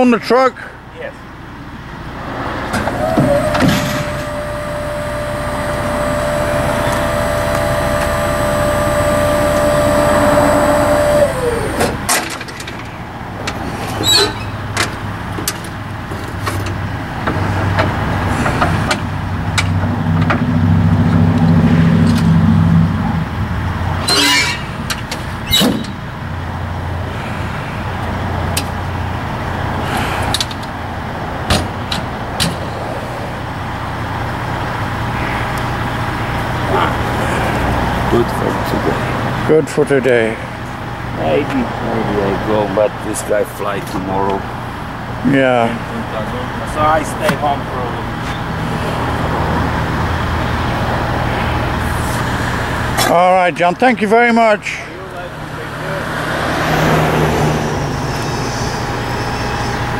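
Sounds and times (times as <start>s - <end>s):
heavy engine running low: 0.6s - 59.9s
hydraulic pump whining: 1.7s - 53.2s, 54.6s - 59.9s.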